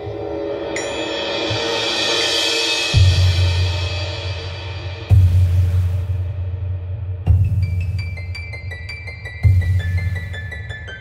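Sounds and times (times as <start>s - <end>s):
cymbal-like wash: 0.0s - 8.3s.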